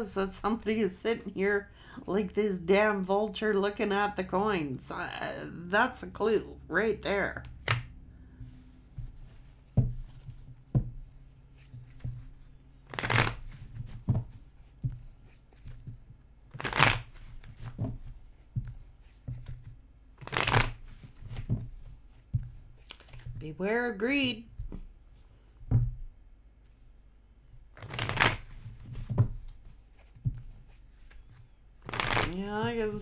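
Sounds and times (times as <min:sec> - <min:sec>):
cards being shuffled: 0:07.4 - 0:23.4, 0:27.7 - 0:33.0.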